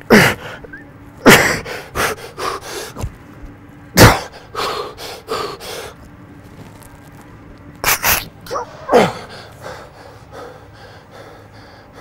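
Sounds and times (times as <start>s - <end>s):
man breathing heavily: 0.0s - 0.7s, 1.3s - 3.0s, 4.1s - 6.0s, 8.6s - 12.0s.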